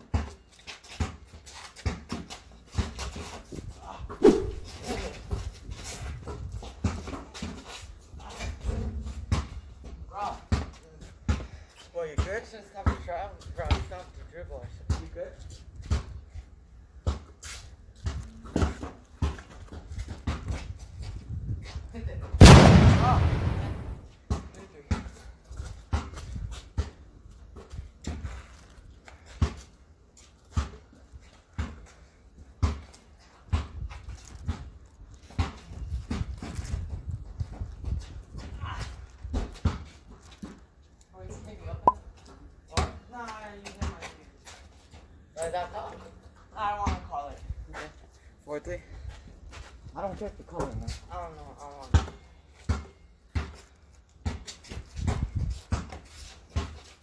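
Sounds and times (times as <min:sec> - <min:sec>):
loud crashing hit: 0:22.4 - 0:24.0
basketball bouncing on concrete: 0:51.8 - 0:56.0.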